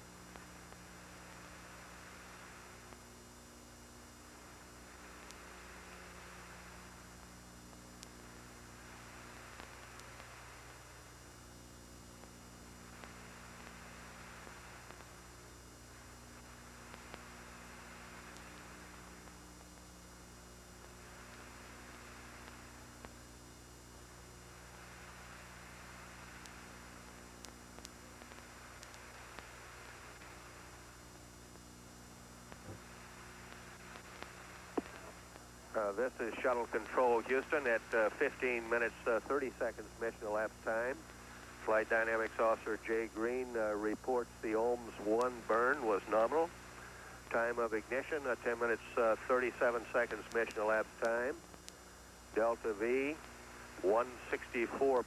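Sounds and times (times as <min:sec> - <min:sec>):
electrical hum with hiss: 0:00.0 - 0:55.0
faint clicks: 0:05.1 - 0:05.5, 0:09.5 - 0:10.5, 0:24.7 - 0:30.5, 0:32.5 - 0:35.5.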